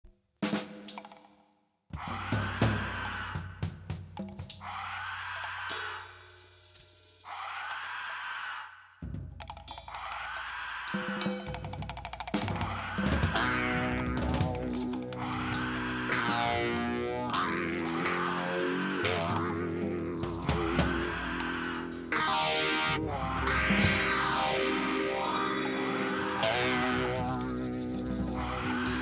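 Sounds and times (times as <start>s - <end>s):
drum kit: 2.0s - 4.7s, 10.9s - 22.2s, 22.9s - 29.0s
heavy metal band playing: 12.4s - 29.0s.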